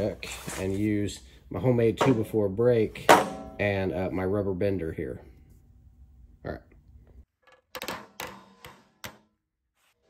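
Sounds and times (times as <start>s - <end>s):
mallet knocking on sheet steel: 3.1s - 3.6s.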